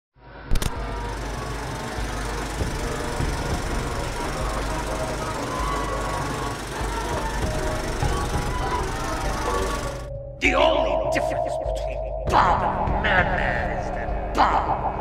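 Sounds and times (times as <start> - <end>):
sharp click: 0.5 - 0.9
dense steady rattling: 0.8 - 10.1.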